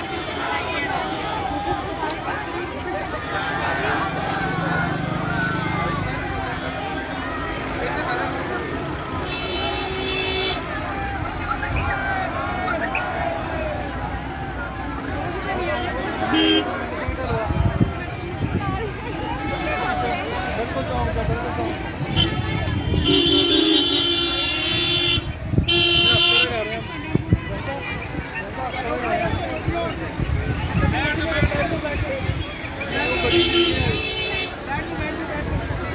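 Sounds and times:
crowd chatter: 0.0 - 35.9
vehicle horn: 9.2 - 10.7, 16.3 - 16.7, 22.1 - 26.5, 32.9 - 34.6.

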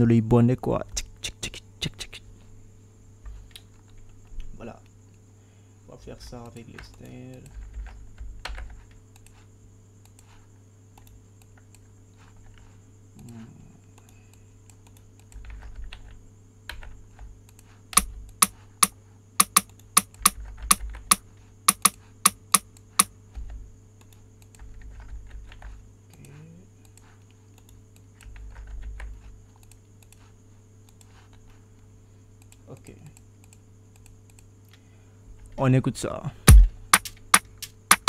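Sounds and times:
electrical hum: 0.0 - 38.0
keyboard and mouse clicking: 10.9 - 11.8, 13.2 - 22.9, 24.0 - 30.2, 32.4 - 34.5, 36.5 - 38.0.

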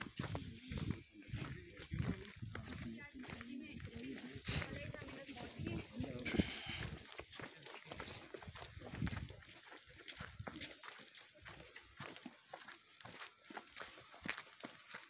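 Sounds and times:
footsteps crunching on snow: 0.0 - 15.0
indistinct voices: 0.3 - 8.3.

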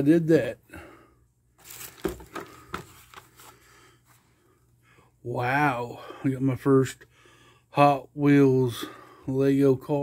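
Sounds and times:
cardboard box rustling and scraping: 1.6 - 3.5.

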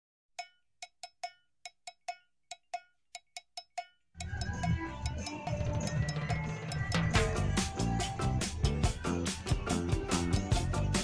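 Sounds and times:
cowbell-like percussive taps: 0.4 - 8.4.

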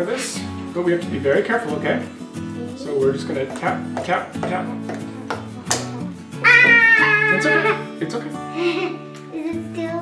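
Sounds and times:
guitar background music: 0.0 - 10.0
loud high-pitched cry: 6.4 - 7.9.

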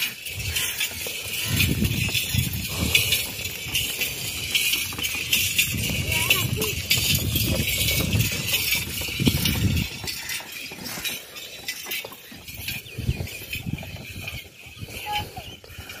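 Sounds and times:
wooden cart rattling on road: 0.0 - 16.0.

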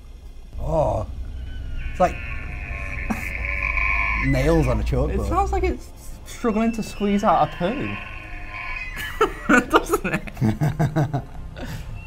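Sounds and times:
elk bugling: 0.6 - 10.4.

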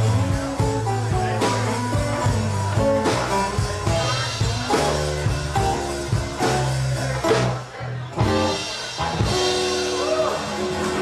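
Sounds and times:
blues band playing: 0.0 - 11.0.

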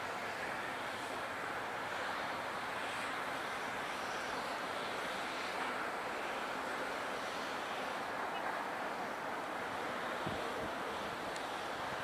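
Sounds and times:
wind noise on microphone: 10.2 - 12.0.

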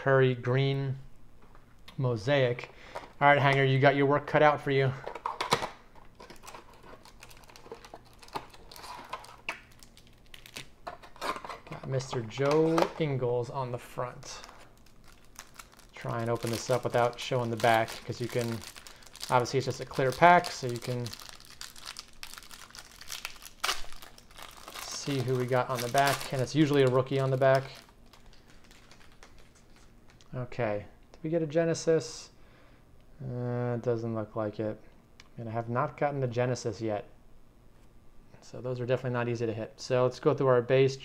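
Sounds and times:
plastic crinkling: 5.0 - 13.2, 14.0 - 30.3.

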